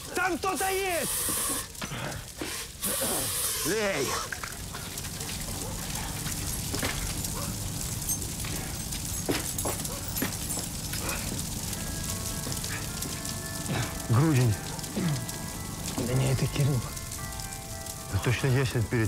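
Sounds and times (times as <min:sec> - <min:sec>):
man shouting: 0:00.0 - 0:01.1
fire crackling: 0:00.0 - 0:19.0.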